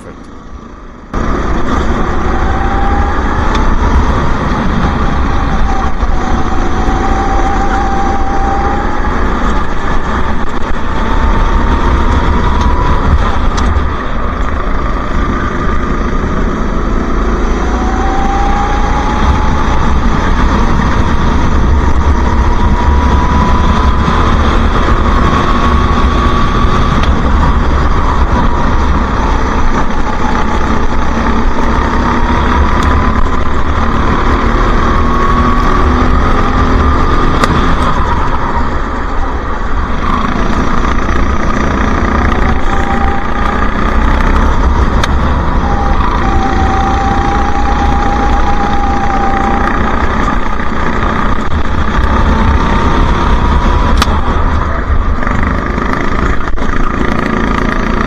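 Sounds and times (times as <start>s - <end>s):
go-kart engine revving: 0.0s - 58.0s
steady low rumble: 0.0s - 58.0s.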